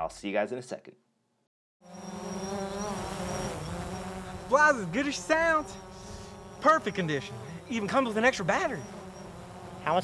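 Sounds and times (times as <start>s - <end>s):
quadcopter drone buzzing: 1.8s - 10.0s.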